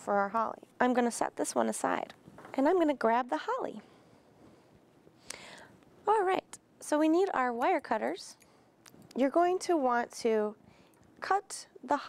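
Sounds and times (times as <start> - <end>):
soft breathy hiss: 3.7 - 6.1, 8.3 - 9.2, 10.6 - 11.2.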